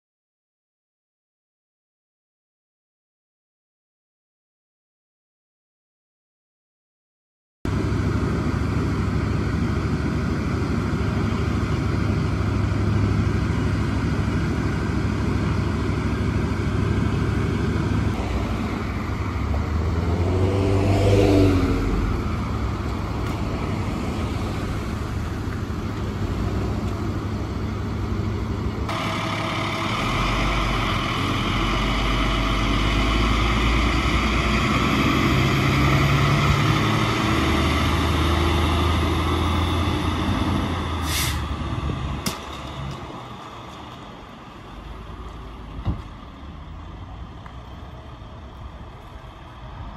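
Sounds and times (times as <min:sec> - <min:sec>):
traffic noise: 0:07.7 - 0:49.9
vehicle engines running slowly: 0:07.7 - 0:49.9
vehicle driving past: 0:16.0 - 0:43.7.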